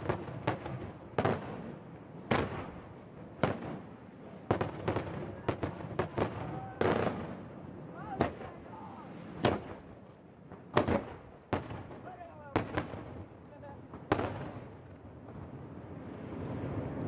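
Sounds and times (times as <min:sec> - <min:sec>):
firework shells bursting: 0:10.5 - 0:13.3.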